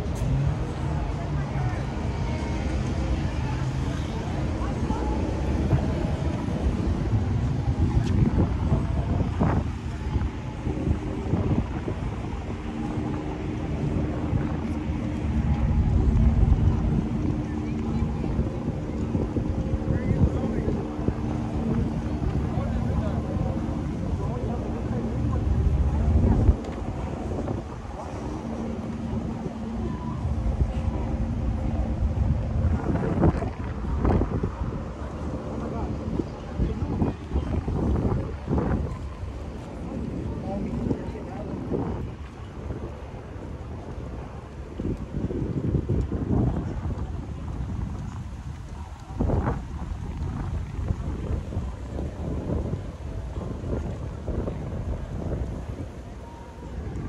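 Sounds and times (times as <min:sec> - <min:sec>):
city traffic: 0:00.0 - 0:57.0
steady low hum: 0:00.0 - 0:57.0
wind buffeting microphone: 0:00.0 - 0:57.0.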